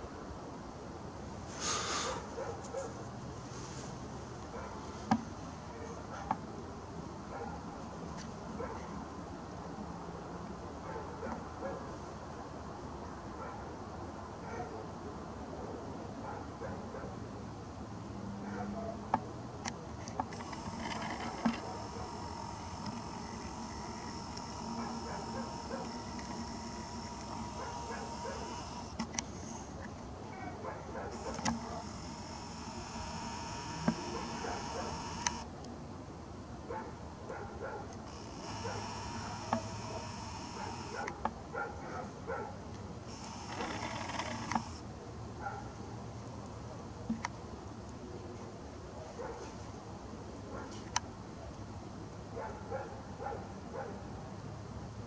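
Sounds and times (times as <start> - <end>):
small clicks: 19.6 - 29.9, 31.2 - 35.5, 38.0 - 41.3, 43.1 - 44.8
camera lens motor whining: 20.1 - 29.8, 31.1 - 35.5, 38.0 - 41.2, 43.1 - 44.8.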